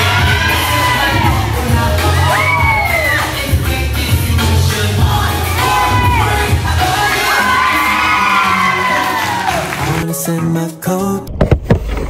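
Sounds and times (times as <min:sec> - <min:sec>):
crowd cheering and whooping: 0:00.0 - 0:03.6, 0:05.2 - 0:10.0
dance music with heavy beat: 0:00.0 - 0:10.5.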